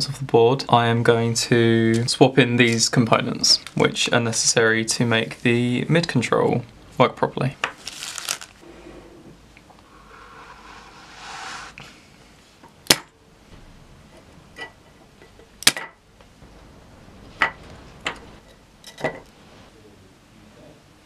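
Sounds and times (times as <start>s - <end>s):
scraping slide: 7.9s - 12.1s, 19.2s - 19.7s.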